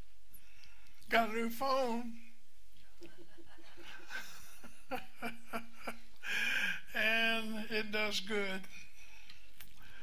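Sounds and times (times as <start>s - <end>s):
person speaking: 1.0s - 3.3s, 6.8s - 8.9s.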